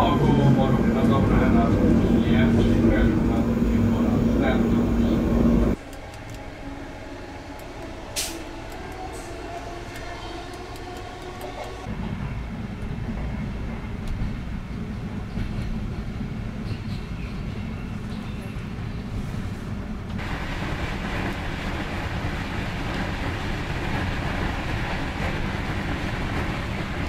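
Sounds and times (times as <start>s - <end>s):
train rumble and rattle: 0.0s - 27.0s.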